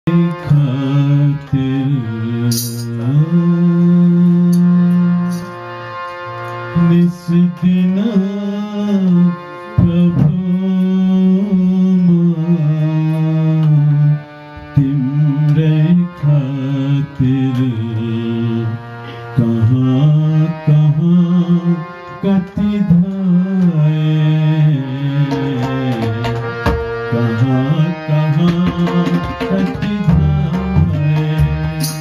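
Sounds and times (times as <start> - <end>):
harmonium sustained notes: 0.1 - 32.0
tabla: 0.1 - 32.0.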